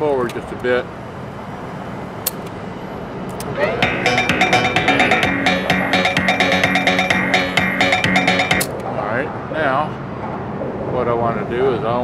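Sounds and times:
music with steady drum beat: 3.8 - 8.7.

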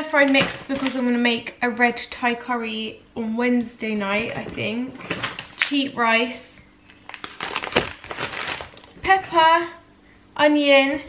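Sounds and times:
plastic packaging crinkling: 0.2 - 1.2, 5.0 - 5.8, 6.8 - 9.4.

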